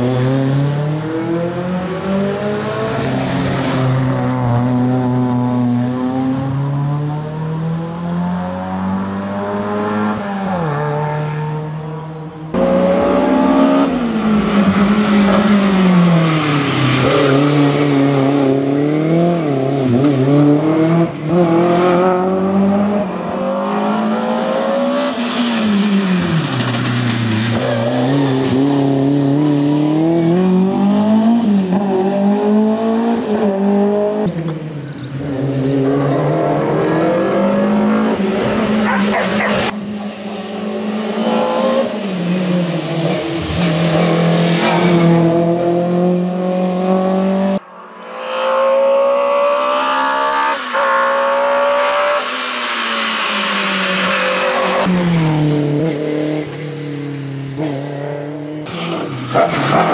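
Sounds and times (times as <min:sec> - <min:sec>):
race car engine revving: 0:00.0 - 0:34.6, 0:35.2 - 0:59.9.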